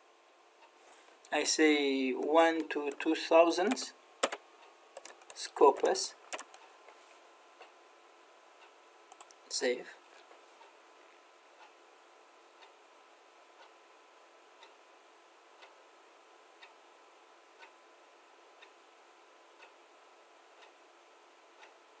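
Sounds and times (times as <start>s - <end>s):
soft even ticking: 8.6s - 9.6s, 14.6s - 14.8s, 19.5s - 19.9s, 20.5s - 20.9s.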